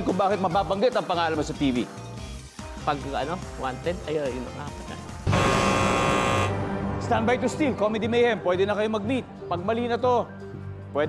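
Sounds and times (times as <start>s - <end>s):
game show buzzer: 5.3s - 6.6s.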